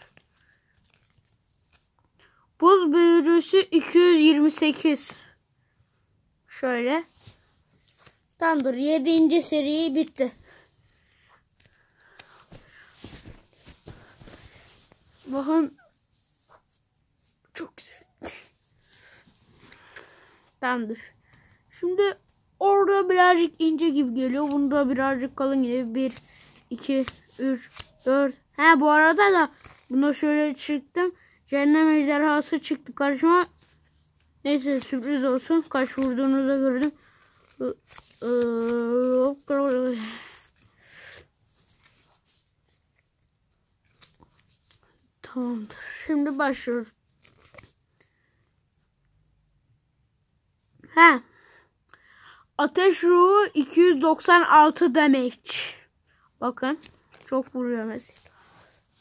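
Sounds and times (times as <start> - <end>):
hands rustling: 7.0 - 17.4
soft breathy noises: 10.0 - 21.8, 26.1 - 27.9, 39.3 - 42.8, 50.7 - 52.6, 58.0 - 59.0.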